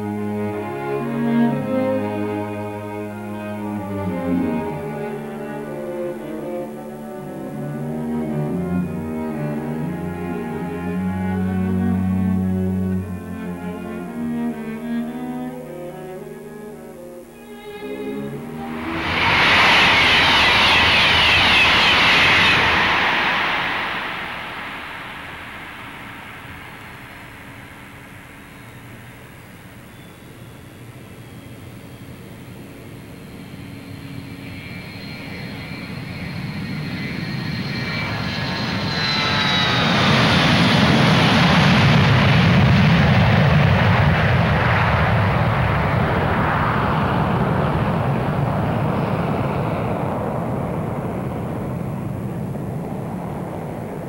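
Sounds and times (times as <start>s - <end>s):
thin whine dropping in pitch: 0.0s - 54.0s
train passing rush: 17.4s - 54.0s.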